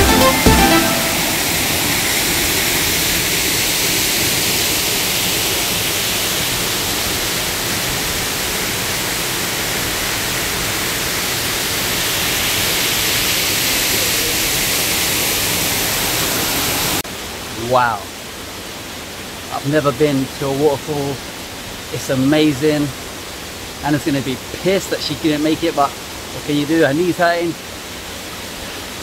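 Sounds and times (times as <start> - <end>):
electronic dance music: 0.0 - 1.9
waterfall rushing: 0.0 - 29.0.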